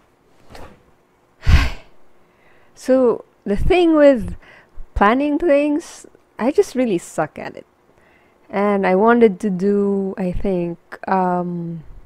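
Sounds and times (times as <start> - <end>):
woman speaking: 2.8 - 4.4, 5.0 - 7.7, 8.5 - 11.9.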